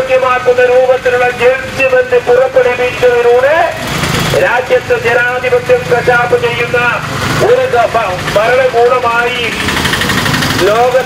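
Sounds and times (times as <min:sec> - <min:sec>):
man speaking: 0:00.0 - 0:09.6, 0:10.6 - 0:11.0.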